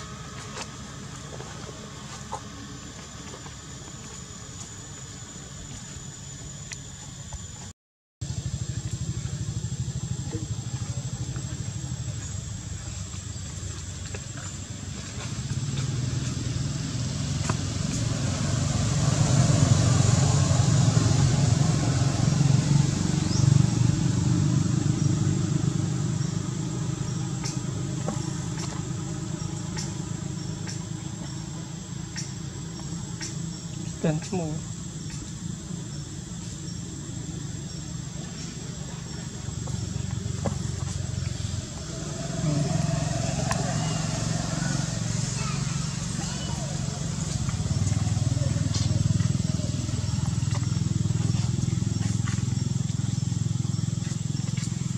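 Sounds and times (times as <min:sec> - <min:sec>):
vehicle engine hum: 0:00.0 - 0:54.9
high-pitched whine: 0:37.5 - 0:54.9.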